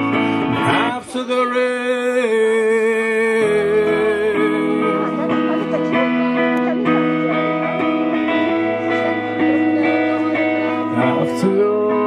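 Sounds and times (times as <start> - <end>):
electric guitar ringing chords: 0.0 - 12.0.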